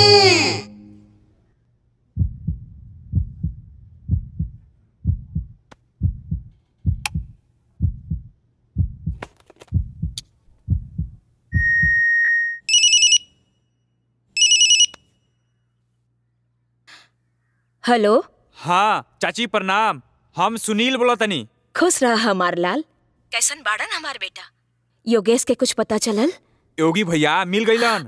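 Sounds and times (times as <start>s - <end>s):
heartbeat double thump: 2.2s - 12.0s
phone ringing: 12.7s - 13.2s, 14.4s - 15.0s.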